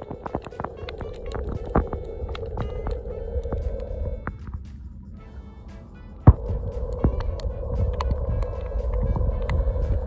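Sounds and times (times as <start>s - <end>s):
sharp underwater clicks: 0.0s - 4.8s, 6.2s - 10.0s
steady hum: 0.0s - 10.0s
underwater rumble of moving water: 0.0s - 10.0s.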